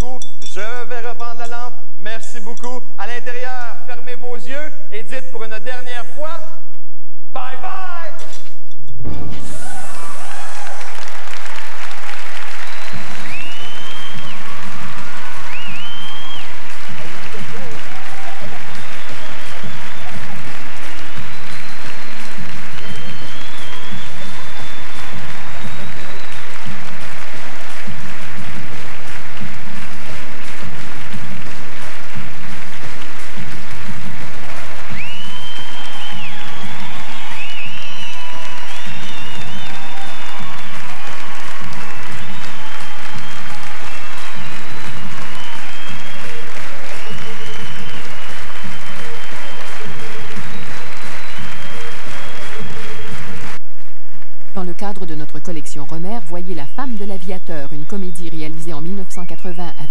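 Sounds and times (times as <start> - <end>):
audience applauding and cheering: 9.0 - 54.3
high whistling tones: 9.1 - 16.8, 17.9 - 26.7, 34.9 - 40.7, 42.0 - 53.2.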